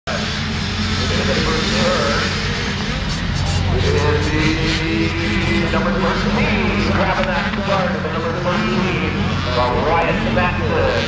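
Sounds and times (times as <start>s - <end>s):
low drone: 0.1s - 11.0s
motocross bike engines revving: 0.1s - 11.0s.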